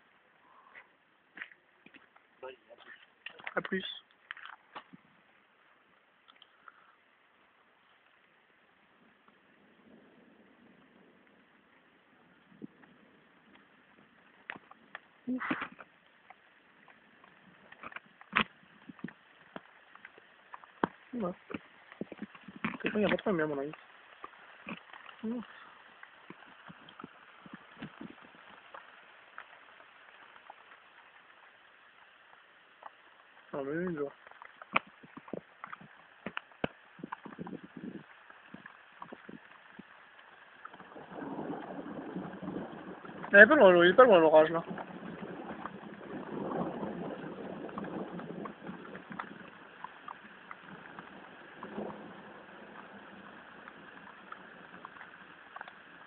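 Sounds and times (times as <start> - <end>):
faint steady hiss: 0.0 - 56.0
raindrop ticks: 0.1 - 56.0.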